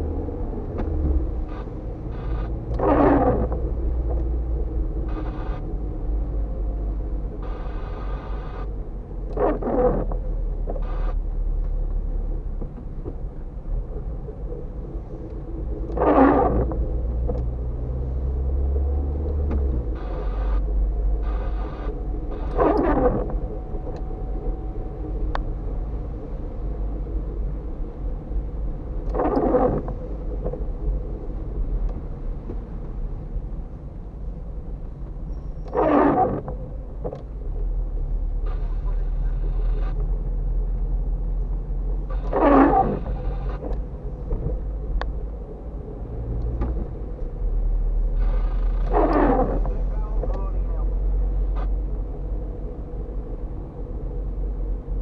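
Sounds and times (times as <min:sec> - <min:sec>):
engine and tyre rumble: 0:00.0 - 0:55.0
windscreen wiper sweeping: 0:00.4 - 0:06.4, 0:09.3 - 0:11.6, 0:12.2 - 0:53.9.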